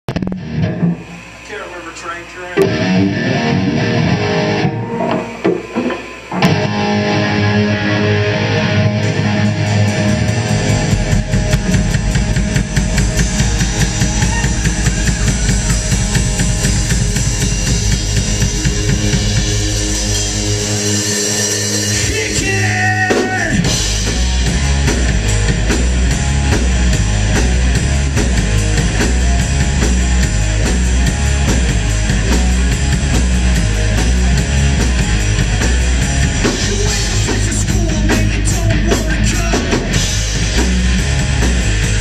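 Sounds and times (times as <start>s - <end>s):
distorted electric guitars and bass droning: 0.0s - 42.0s
live rock band: 0.1s - 1.6s, 2.2s - 42.0s
person singing: 36.6s - 39.9s.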